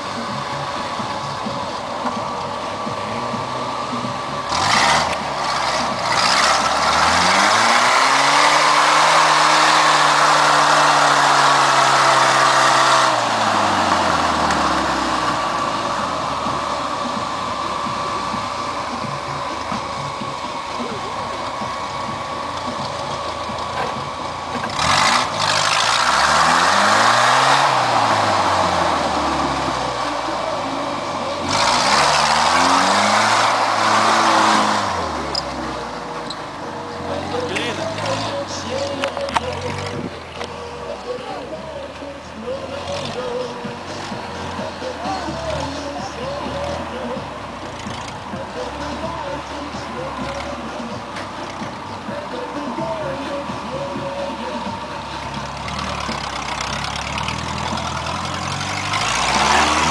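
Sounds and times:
off-road vehicle engine revving: 0.0 - 59.9.

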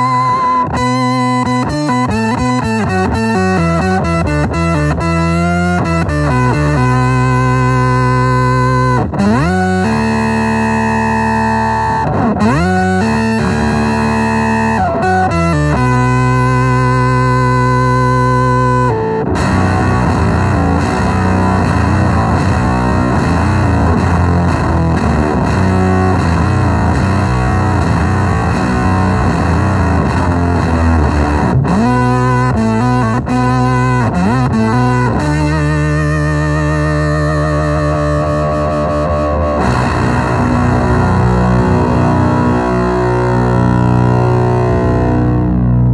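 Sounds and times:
fuzzed electric guitar: 0.0 - 45.9.

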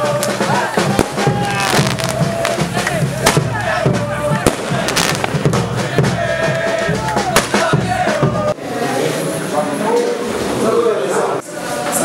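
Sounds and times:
crowd voices: 0.0 - 12.0
firecrackers banging: 0.1 - 8.5.

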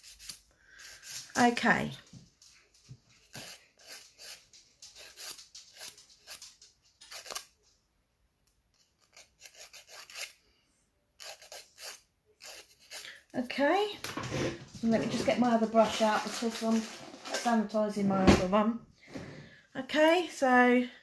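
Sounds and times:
nail file rasping on fingernail: 0.0 - 1.2, 3.3 - 6.4, 7.0 - 7.5, 8.8 - 10.4, 11.2 - 13.2.

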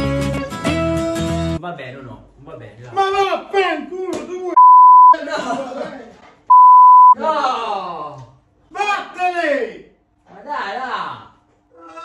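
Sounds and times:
censor bleep tone: 4.6 - 5.2, 6.5 - 7.2.

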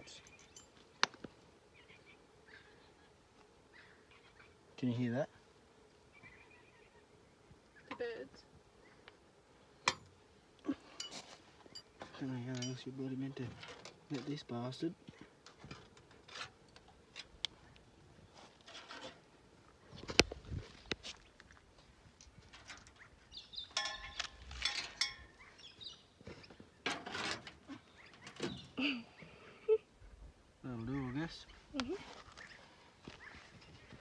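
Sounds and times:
birds calling: 0.0 - 12.9, 22.6 - 29.8, 30.6 - 34.0.

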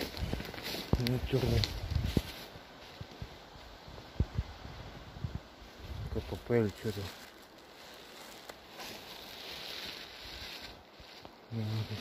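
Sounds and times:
footsteps in undergrowth: 0.0 - 4.4, 5.3 - 12.0
man talking: 0.9 - 1.8, 6.1 - 7.2, 11.5 - 12.0.

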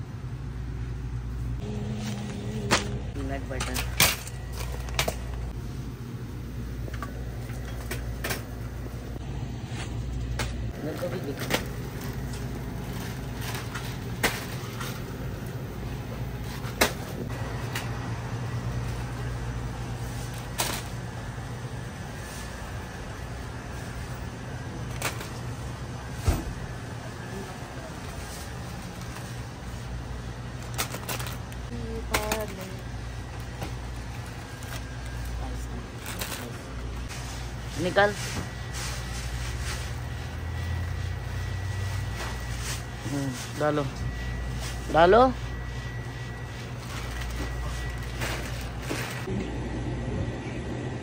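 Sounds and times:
refrigerator and air conditioning hum: 0.0 - 51.0.

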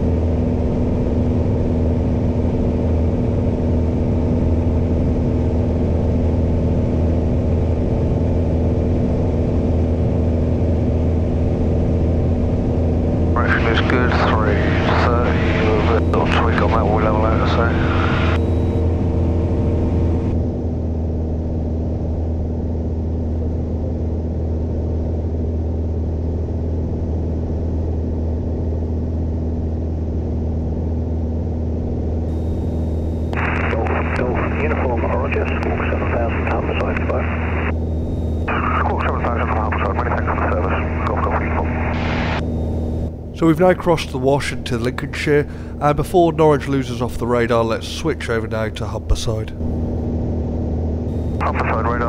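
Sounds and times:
aircraft engine droning: 0.0 - 52.0.

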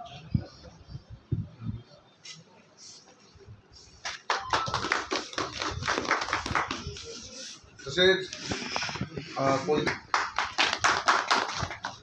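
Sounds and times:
group of people clapping: 4.0 - 7.1, 9.7 - 12.0.

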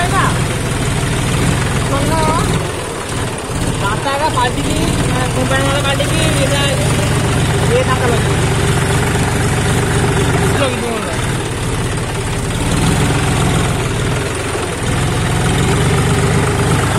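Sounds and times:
tractor diesel engine running: 0.0 - 16.9.

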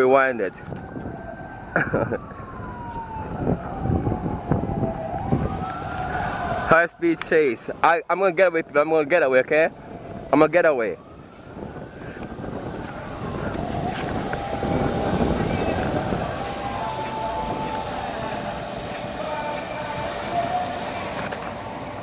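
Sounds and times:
steady traffic rush: 0.0 - 22.0
vehicle passing: 11.8 - 22.0.

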